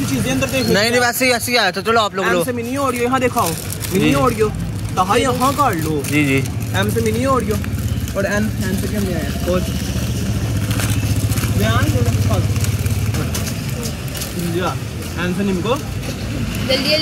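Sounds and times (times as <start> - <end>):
street chatter: 0.0 - 17.0.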